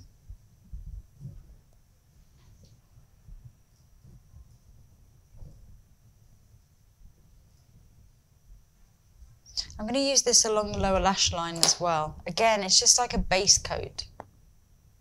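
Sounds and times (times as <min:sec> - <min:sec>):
steady low rumble: 0:03.2 - 0:12.6.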